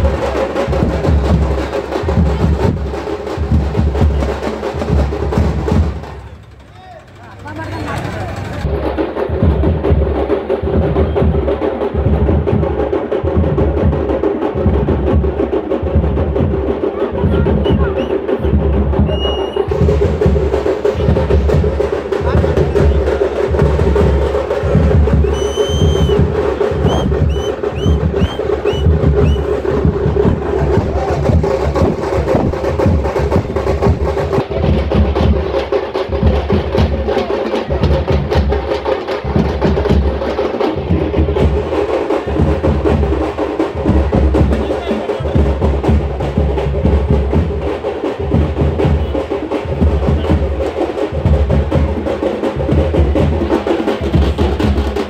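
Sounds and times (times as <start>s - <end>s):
crowd voices: 0.0s - 13.2s, 15.4s - 55.0s
frame drums beating: 0.0s - 55.0s.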